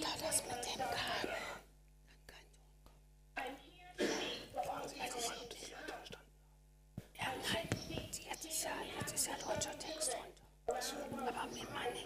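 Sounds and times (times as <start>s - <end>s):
girl's speech over loudspeakers: 7.2s - 10.3s.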